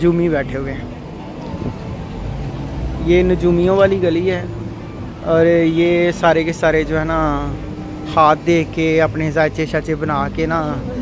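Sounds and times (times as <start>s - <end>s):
distant traffic rumble: 0.0s - 11.0s.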